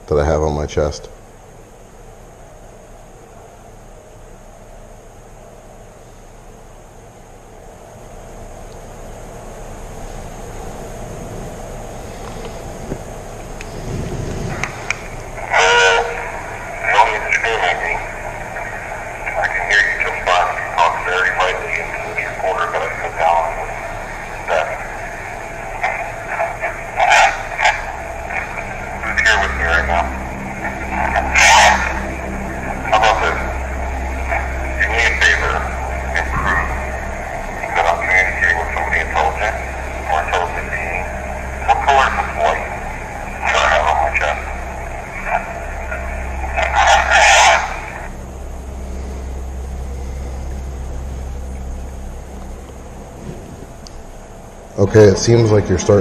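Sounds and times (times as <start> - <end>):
low hum: 0.0 - 56.0
indistinct voices: 10.1 - 56.0.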